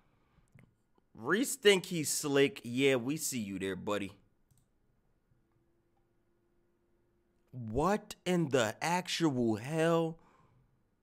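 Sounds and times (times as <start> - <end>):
faint steady hum: 0.0 - 11.0
man's voice: 1.2 - 4.2, 7.6 - 10.2
computer mouse click: 4.5 - 4.7.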